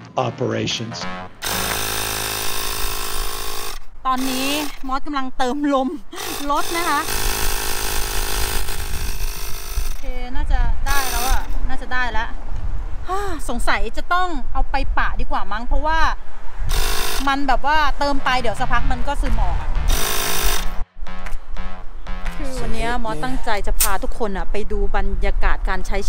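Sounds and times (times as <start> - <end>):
power inflator compressor buzzing: 1.4 - 4.9, 6.1 - 10.1, 10.9 - 11.5, 16.7 - 17.4, 19.8 - 20.8.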